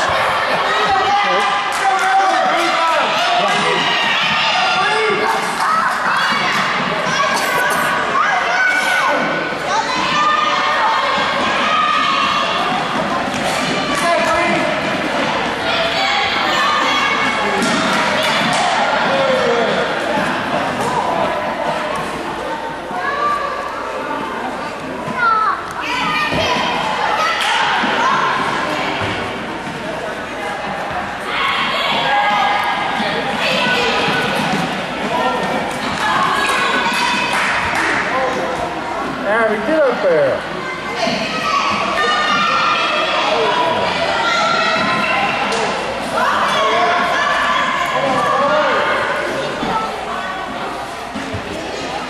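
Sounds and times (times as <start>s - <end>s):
children shouting in gymnasium: 0.0s - 14.5s, 15.5s - 19.6s, 25.1s - 29.2s, 31.2s - 34.5s, 35.2s - 38.1s, 40.5s - 50.5s.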